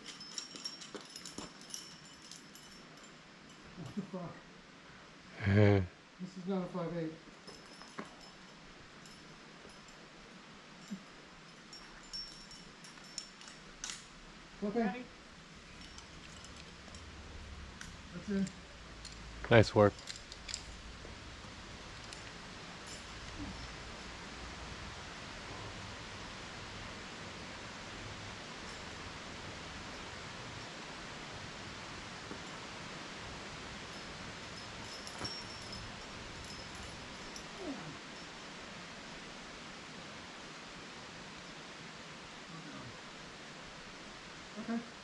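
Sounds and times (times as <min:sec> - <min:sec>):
faint clicks and rustles: 0:00.0 - 0:04.0, 0:15.6 - 0:23.9
outdoor background hiss: 0:00.0 - 0:45.0.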